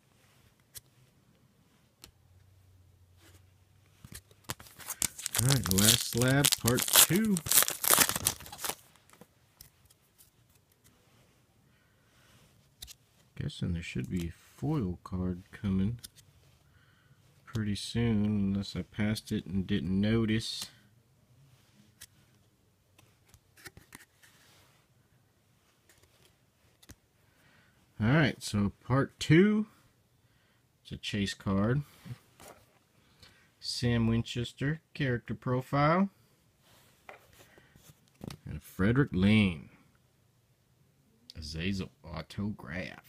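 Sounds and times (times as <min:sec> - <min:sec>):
trading cards being handled: 0:03.2 - 0:11.0, 0:21.9 - 0:24.5
foil wrapper tearing and crinkling: 0:04.5 - 0:08.9.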